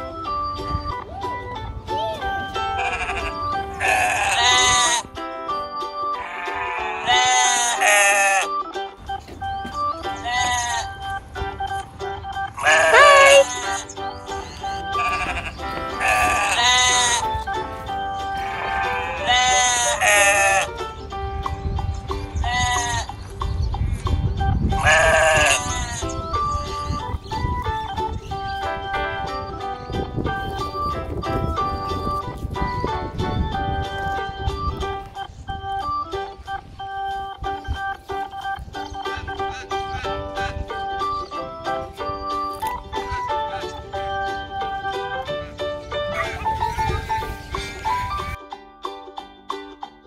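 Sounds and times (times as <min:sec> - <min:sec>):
light tinkling background music: 0:00.0 - 0:50.0
sheep bleating: 0:02.7 - 0:05.0, 0:06.1 - 0:08.4, 0:12.6 - 0:13.9, 0:14.9 - 0:17.3, 0:18.4 - 0:20.7, 0:24.8 - 0:26.1, 0:45.5 - 0:48.2.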